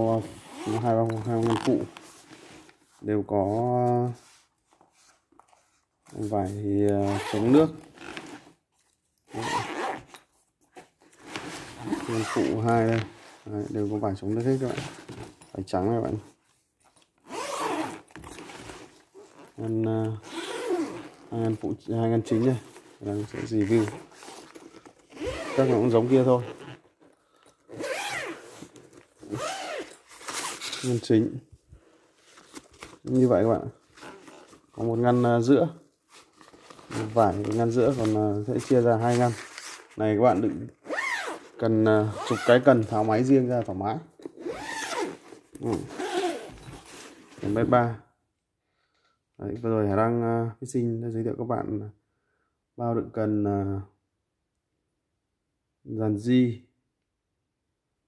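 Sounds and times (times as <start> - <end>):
zipper on fabric case: 0.2 - 2.6, 7.0 - 8.6, 9.3 - 10.2, 11.2 - 13.4, 17.2 - 19.6, 20.2 - 21.5, 22.6 - 26.9, 27.7 - 30.9, 40.8 - 42.8, 44.2 - 47.3.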